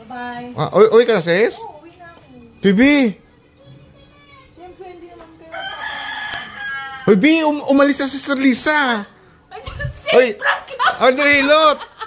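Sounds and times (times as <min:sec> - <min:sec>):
rooster crowing: 0:05.5 - 0:07.3.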